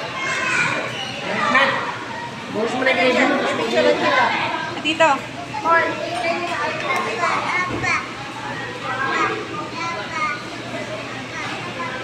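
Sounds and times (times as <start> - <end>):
chatter of voices: 0.0 - 12.0
child's high voice: 0.1 - 1.2.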